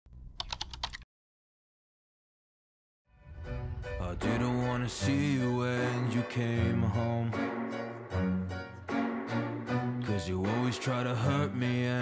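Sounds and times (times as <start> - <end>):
keyboard key clicks: 0.4 - 1.0.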